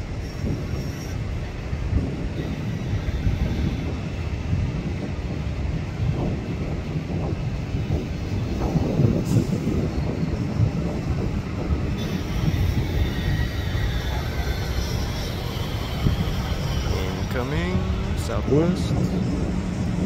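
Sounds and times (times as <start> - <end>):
distant jet airliner rumble: 0.0 - 20.0.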